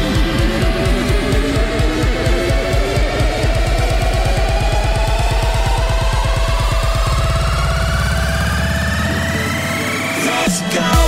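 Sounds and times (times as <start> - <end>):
fast pulsing bass: 0.0 - 11.0
held bass: 0.0 - 11.0
synth riser climbing in pitch: 0.0 - 11.0.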